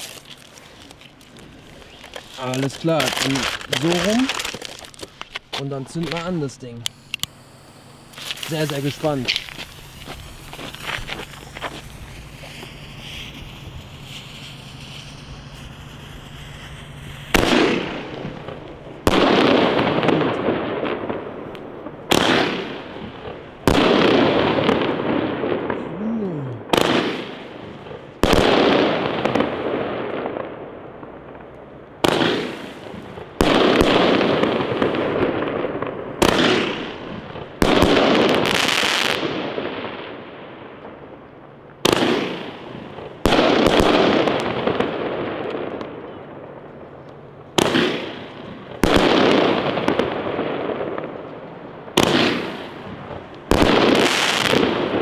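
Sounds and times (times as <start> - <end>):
fireworks bangs: 0.0 - 55.0
fireworks crackling: 0.0 - 55.0.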